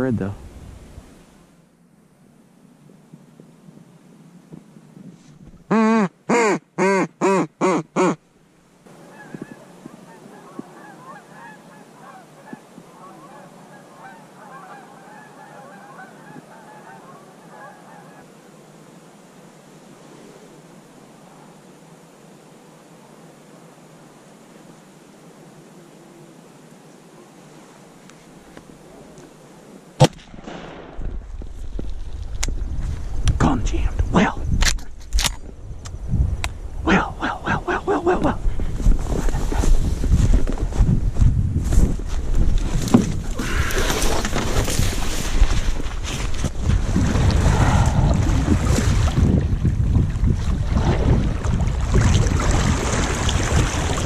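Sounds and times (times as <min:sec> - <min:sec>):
goose honking: 0:09.0 - 0:18.3.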